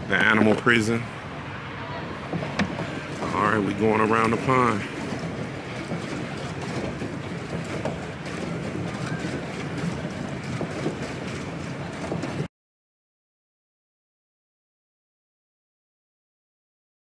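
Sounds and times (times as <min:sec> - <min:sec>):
wind and water rushing: 0:00.0 - 0:12.5.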